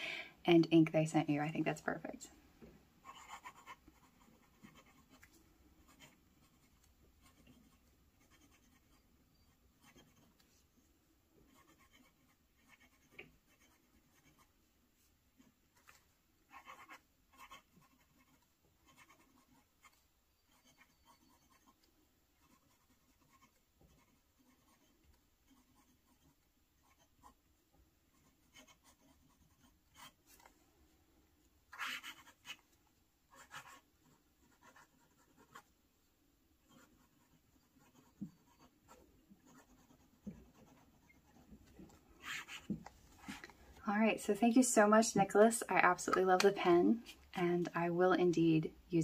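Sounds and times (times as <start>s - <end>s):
fountain pen scratching on paper: 3.0s - 10.6s, 11.4s - 14.6s, 15.4s - 27.4s, 28.1s - 30.5s, 31.7s - 32.6s, 33.3s - 35.7s, 36.6s - 43.5s.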